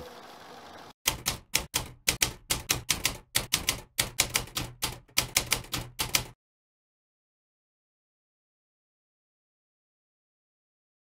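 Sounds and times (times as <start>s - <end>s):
typewriter keys clacking: 1.1s - 6.4s.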